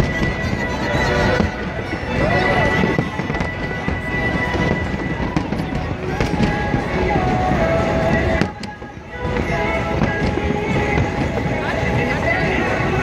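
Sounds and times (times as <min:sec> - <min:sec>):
fireworks crackling and popping: 0:00.0 - 0:13.0
music playing: 0:00.0 - 0:13.0.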